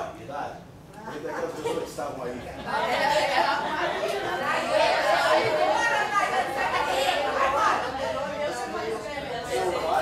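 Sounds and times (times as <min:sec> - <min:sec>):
group chatter: 0:01.0 - 0:10.0.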